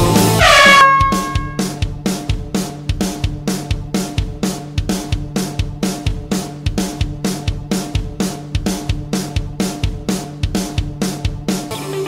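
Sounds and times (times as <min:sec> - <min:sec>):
rock workout music: 0:00.0 - 0:12.0
horn-like timer signal: 0:00.4 - 0:01.7.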